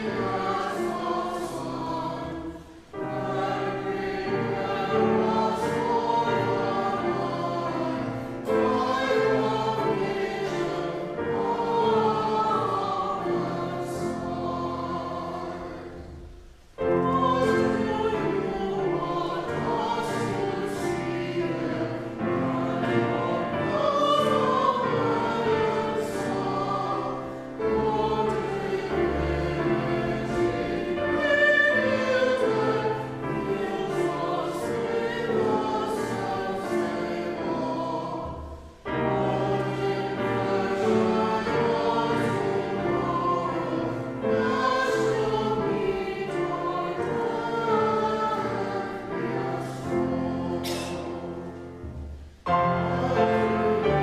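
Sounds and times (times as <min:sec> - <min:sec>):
congregation singing a hymn: 0:00.0 - 0:54.0
grand piano accompaniment: 0:00.0 - 0:54.0.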